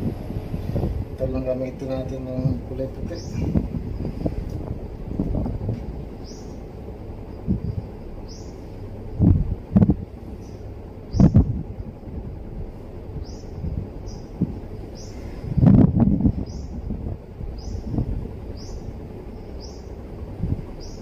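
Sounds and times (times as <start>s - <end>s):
steady low background noise: 0.0s - 21.0s
bird chirping: 3.0s - 4.2s, 6.2s - 6.6s, 7.2s - 8.7s, 10.4s - 11.5s, 13.2s - 15.3s, 16.4s - 16.8s, 17.5s - 20.0s, 20.8s - 21.0s.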